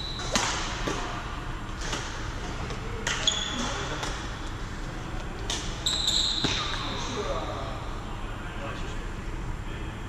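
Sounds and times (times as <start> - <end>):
racket striking shuttlecock: 0.2 - 1.2
shoes squealing on floor: 3.2 - 3.8, 5.8 - 7.1.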